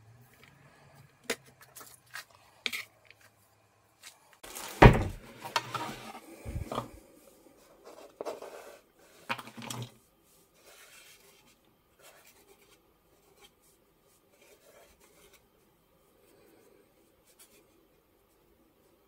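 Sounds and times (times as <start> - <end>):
plastic bowl rustling: 4.4 - 7.0.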